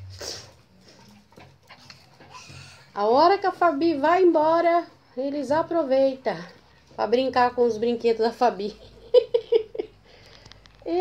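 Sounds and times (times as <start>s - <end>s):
puppy sound: 0.1s - 2.9s.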